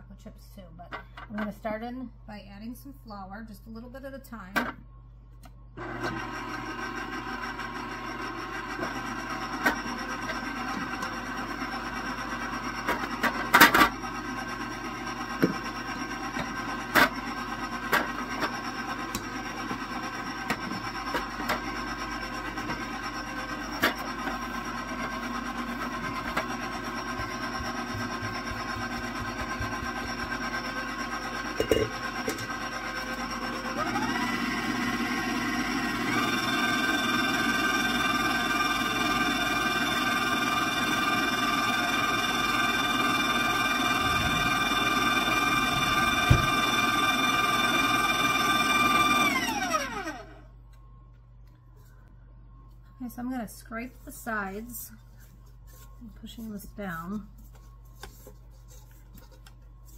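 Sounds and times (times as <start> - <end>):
stand mixer motor whining: 5.8 - 50.5.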